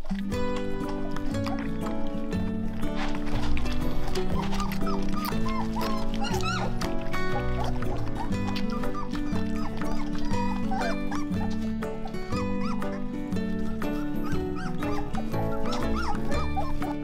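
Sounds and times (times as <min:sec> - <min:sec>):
background music: 0:00.0 - 0:17.0
puppies whimpering and squeaking: 0:00.0 - 0:17.0.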